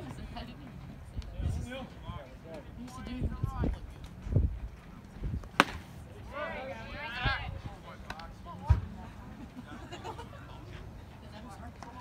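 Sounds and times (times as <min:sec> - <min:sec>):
baseball smacking into leather mitt: 0:05.4 - 0:05.9.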